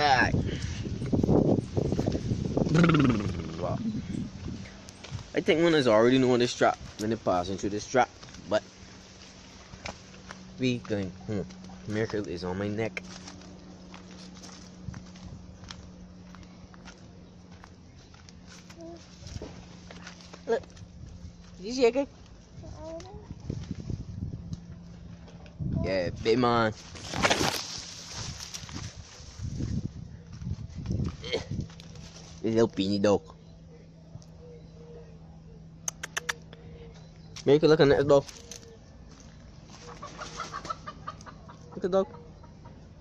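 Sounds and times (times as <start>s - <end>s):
low hum: 0.0s - 39.9s
man speaking: 2.7s - 3.9s
person laughing and vocalizing: 2.7s - 4.0s
footsteps walking: 8.1s - 12.2s, 13.0s - 23.8s.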